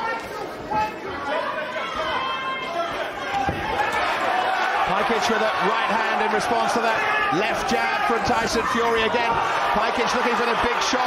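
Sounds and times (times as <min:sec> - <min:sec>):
crowd chatter in large hall: 0:00.0 - 0:11.0.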